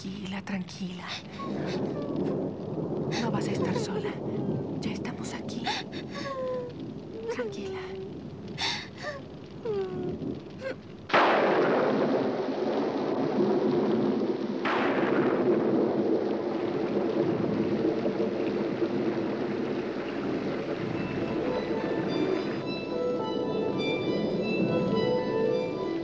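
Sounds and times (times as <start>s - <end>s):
heavy rain: 0.0s - 26.0s
thunder crack: 1.1s - 26.0s
faint voice sounds: 1.2s - 2.4s.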